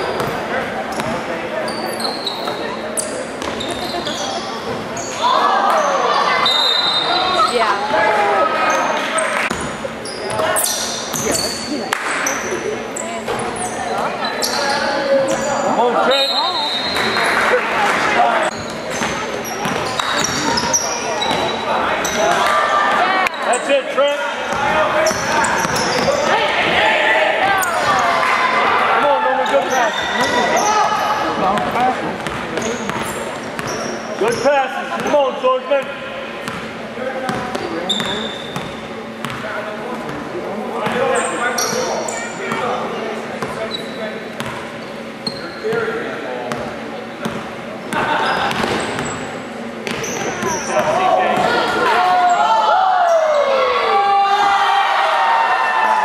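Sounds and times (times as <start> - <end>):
players and spectators shouting: 4.1 - 11.8, 19.4 - 31.6, 50.0 - 56.0
basketball bouncing on hardwood court: 19.0 - 20.7, 31.6 - 33.8.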